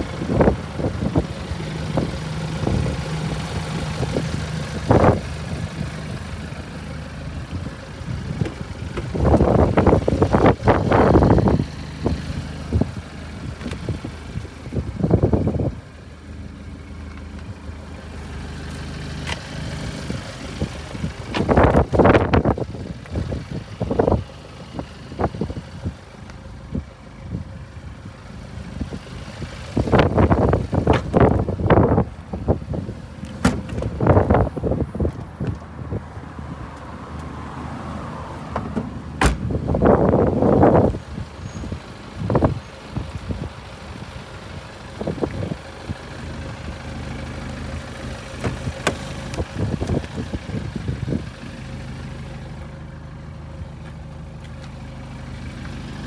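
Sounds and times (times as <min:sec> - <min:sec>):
diesel engine idling: 0:00.0 - 0:56.0
car boot lid slamming: 0:33.4 - 0:34.0, 0:38.5 - 0:39.6, 0:48.4 - 0:49.2.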